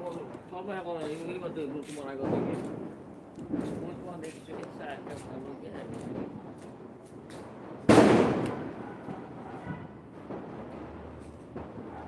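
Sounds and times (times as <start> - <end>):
firecracker bang with echo: 0.0 - 12.0.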